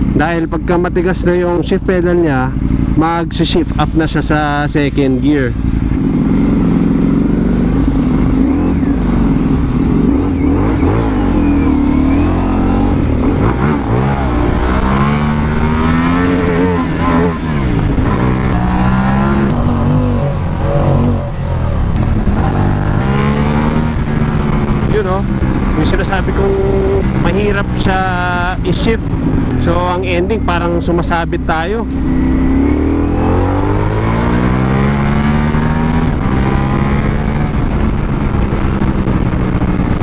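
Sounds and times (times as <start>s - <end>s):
motorcycle engine accelerating through gears: 0.0s - 40.0s.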